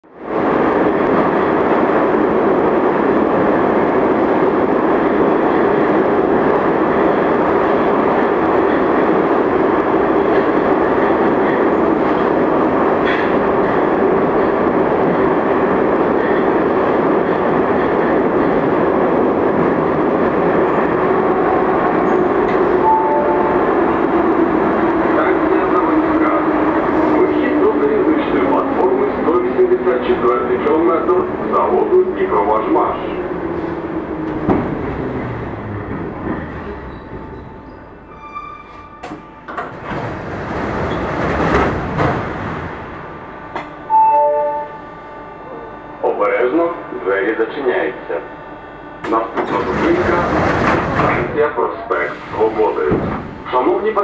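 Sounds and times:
metro train running noise: 0.0 - 54.0.

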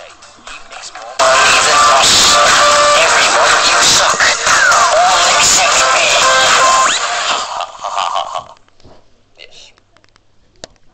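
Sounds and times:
music with a voice: 0.0 - 7.8.

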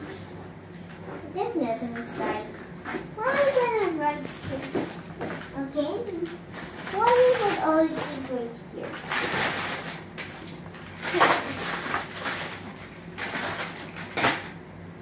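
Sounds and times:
gift wrapping rustling: 2.9 - 14.5.

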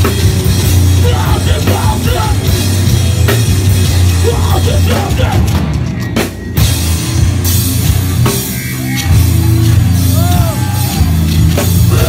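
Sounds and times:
distorted guitar: 0.0 - 12.0
metal band playing live: 0.0 - 12.0
pounding drums: 0.0 - 12.0.

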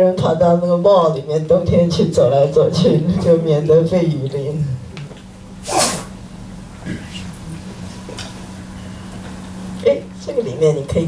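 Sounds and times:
person breath burst: 5.6 - 6.2.

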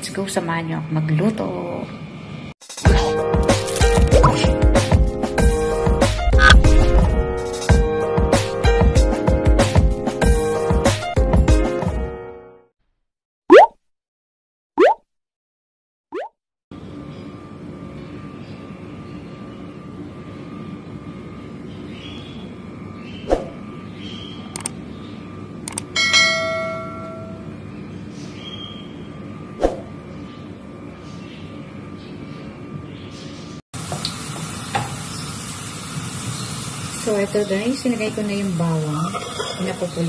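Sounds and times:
garlic sizzling in oil: 33.8 - 40.0.

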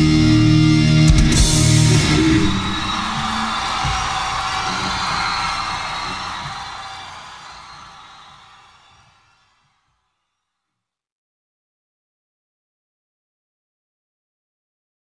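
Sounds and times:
hard rock band playing live: 0.0 - 3.5
crowd cheering: 1.3 - 10.1.

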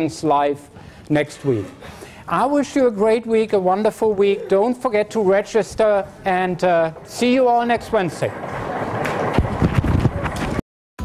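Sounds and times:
general hubbub: 0.0 - 10.6.

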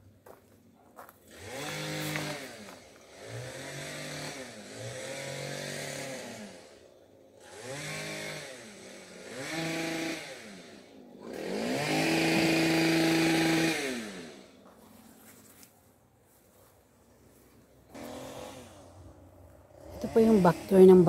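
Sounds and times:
chainsaw engine revving: 1.2 - 14.8, 17.3 - 21.0.

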